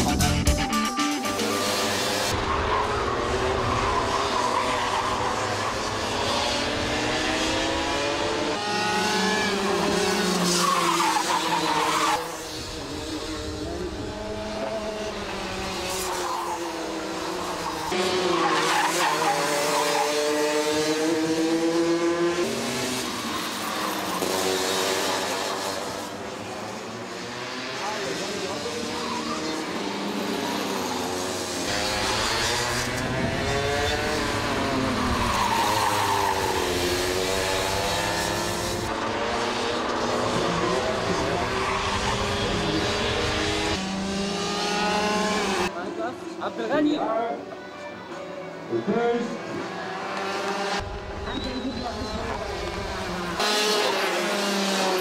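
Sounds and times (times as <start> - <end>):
racing kart engines: 1.2 - 55.0.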